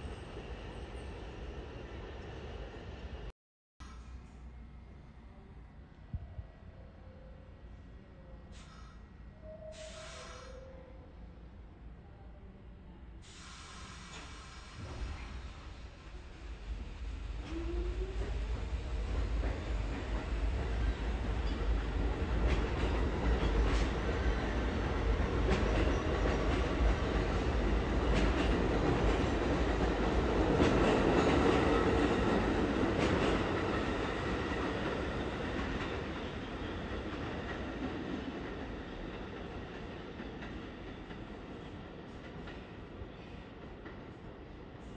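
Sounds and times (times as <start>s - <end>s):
subway train on rails: 0.0s - 44.9s.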